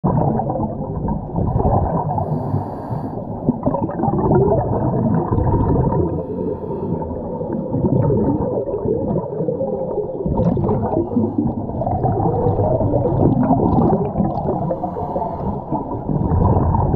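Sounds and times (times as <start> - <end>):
underwater exhaled bubbles gurgling: 0.0 - 16.9.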